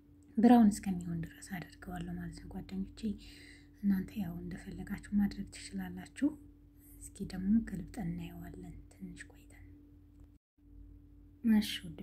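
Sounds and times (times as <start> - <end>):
steady low hum: 0.0 - 12.0
person speaking softly: 0.4 - 9.7.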